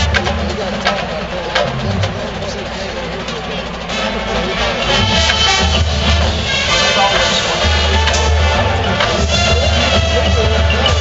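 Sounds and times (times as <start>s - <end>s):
low steady rumble: 0.0s - 10.6s
crowd voices talking: 0.0s - 11.0s.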